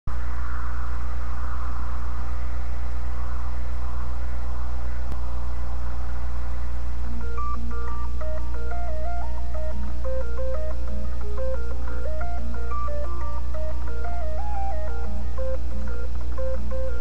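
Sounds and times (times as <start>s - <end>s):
low electrical hum: 0.1s - 17.0s
electronic melody: 7.2s - 17.0s.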